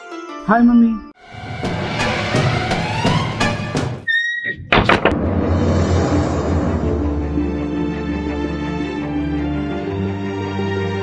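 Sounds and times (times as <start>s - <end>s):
wooden door slamming: 4.7s - 5.2s.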